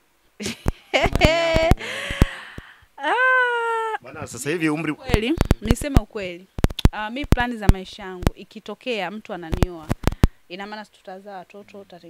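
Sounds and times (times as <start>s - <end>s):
woman's high-pitched hesitation sound: 0.4s - 2.3s, 3.0s - 4.0s.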